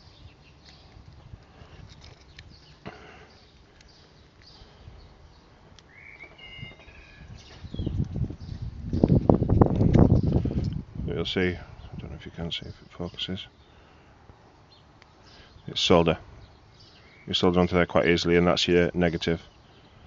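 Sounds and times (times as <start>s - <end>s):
bird chirping: 0.0s - 9.4s, 14.6s - 20.0s
ragged rumble on microphone: 6.7s - 12.2s.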